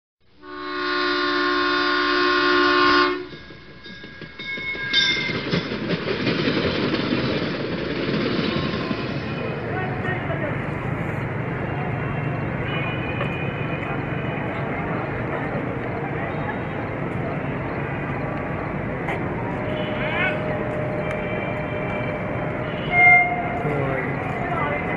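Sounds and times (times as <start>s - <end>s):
diesel locomotive rumble: 0.2s - 24.9s
train horn chord: 0.4s - 3.4s, 19.5s - 23.6s
station noise: 0.6s - 24.9s
faint voices: 8.8s - 24.9s.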